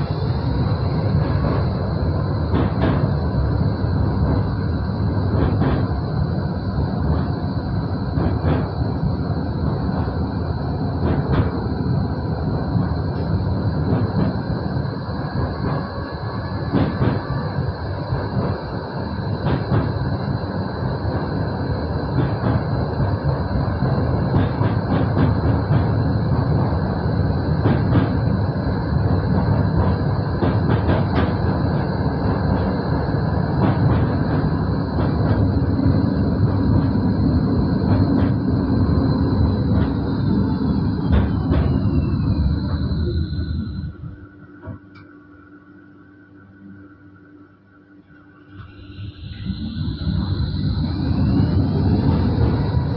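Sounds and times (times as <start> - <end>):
rail clicks: 0.0 - 45.1
tram wheels rumbling on rails: 0.0 - 45.1, 48.1 - 52.9
high whine: 0.0 - 52.9.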